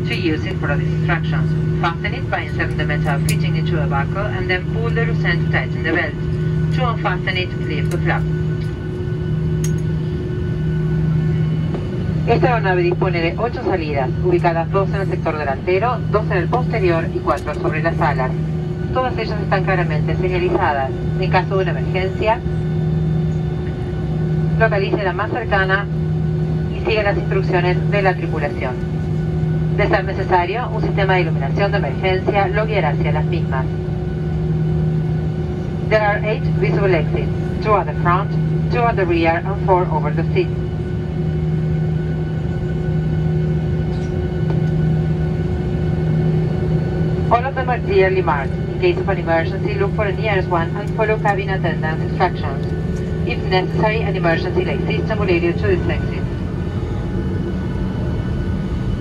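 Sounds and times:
aircraft cabin hum: 0:00.0 - 0:59.0
announcement over cabin speakers: 0:00.0 - 0:59.0
low rumble: 0:00.0 - 0:59.0.

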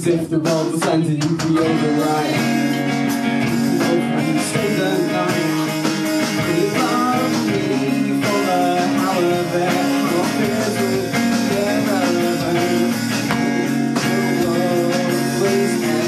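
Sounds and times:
acoustic guitar chords: 0:00.0 - 0:16.0
drum kit: 0:00.0 - 0:16.0
person singing: 0:00.0 - 0:16.0.

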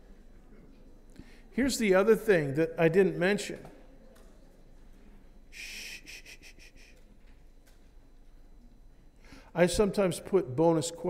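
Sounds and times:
person drawing breath: 0:09.2 - 0:09.5.

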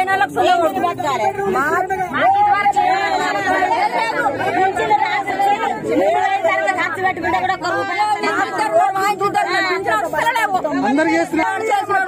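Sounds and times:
women talking: 0:00.0 - 0:12.0.

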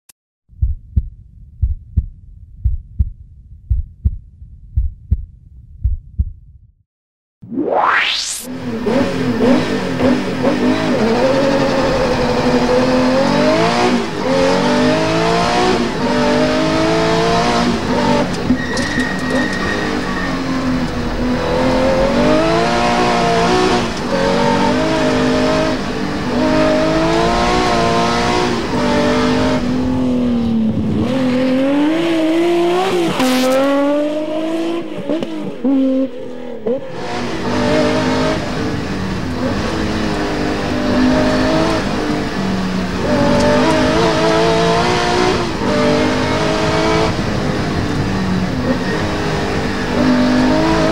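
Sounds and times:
low heartbeat-like thumping: 0:00.5 - 0:06.8
rising sweep: 0:07.4 - 0:09.0, 0:20.5 - 0:38.4
rally car engine revving: 0:08.5 - 0:50.9.

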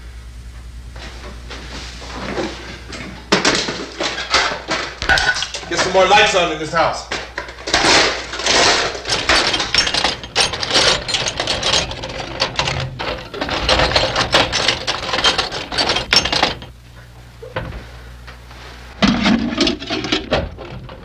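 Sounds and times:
tools rattling in metal toolbox: 0:03.4 - 0:06.2, 0:07.2 - 0:16.7, 0:19.2 - 0:21.0.

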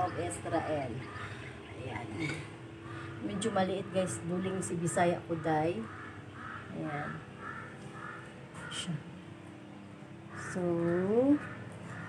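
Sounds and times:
bird harsh calls: 0:00.0 - 0:03.6, 0:05.2 - 0:09.0, 0:10.2 - 0:12.0.

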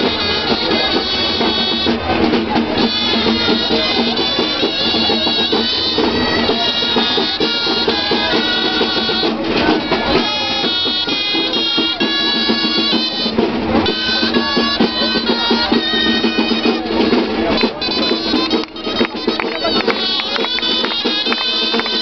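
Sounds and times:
shrill reed pipes playing melody: 0:00.0 - 0:22.0
steady drumbeat: 0:00.0 - 0:22.0.

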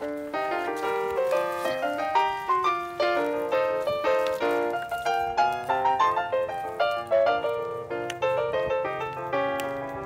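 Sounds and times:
piano music: 0:00.0 - 0:10.0.

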